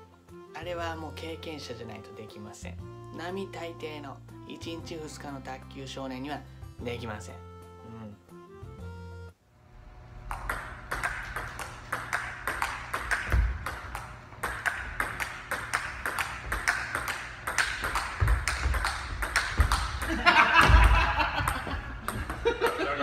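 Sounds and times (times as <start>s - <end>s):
ping-pong ball clicking: 10.2s - 20.2s
feet thumping on wooden floor: 13.2s - 15.8s, 16.4s - 22.6s
person falling to the floor: 20.5s - 21.3s.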